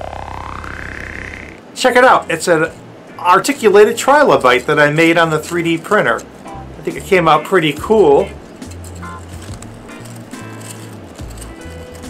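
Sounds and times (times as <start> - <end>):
held higher tones: 0.0 - 12.0
low bass notes: 4.6 - 10.3.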